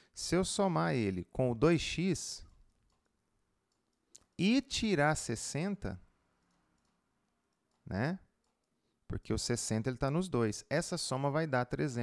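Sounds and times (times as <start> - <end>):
man speaking: 0.2 - 2.5, 4.3 - 6.0, 7.8 - 8.3, 9.1 - 12.0
faint mouse clicks: 2.5 - 4.4, 6.4 - 9.0.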